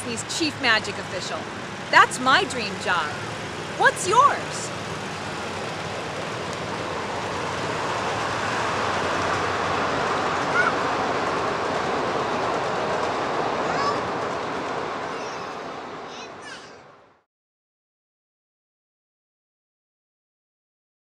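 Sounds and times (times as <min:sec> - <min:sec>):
miniature train wheels on rails: 0:00.0 - 0:16.9.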